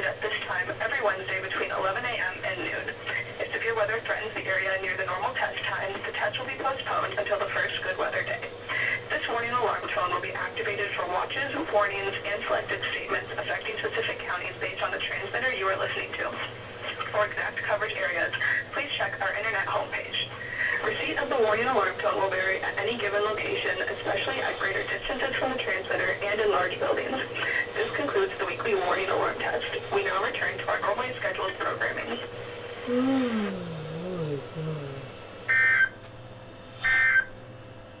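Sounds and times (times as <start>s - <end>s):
steady low hum: 30.1s - 35.5s
person humming: 32.8s - 35.2s.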